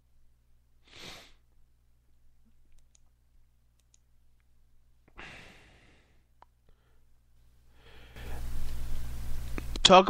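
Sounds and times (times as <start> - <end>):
low steady hum: 0.0 - 0.8, 1.4 - 10.0
faint clicks: 2.5 - 3.1, 3.8 - 4.5
breathy exhale into microphone: 7.8 - 8.6.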